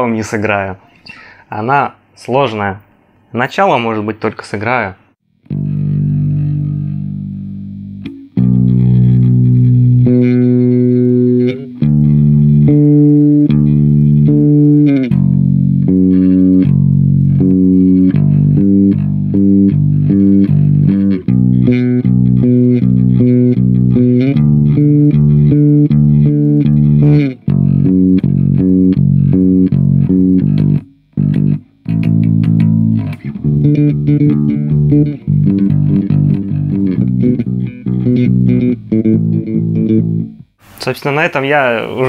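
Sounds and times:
electric bass guitar plucked: 5.4 - 40.6.

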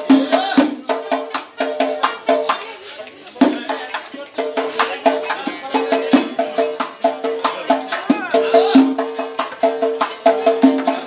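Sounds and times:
frame drum with jingles: 0.0 - 11.0.

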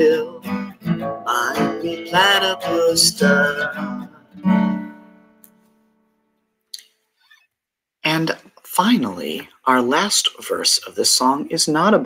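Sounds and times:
acoustic guitar chord ringing: 0.0 - 6.4.

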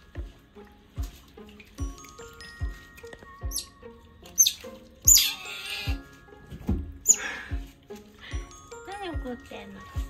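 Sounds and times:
background music with steady beat: 0.0 - 10.0
otter pup high squeals: 4.4 - 6.0.

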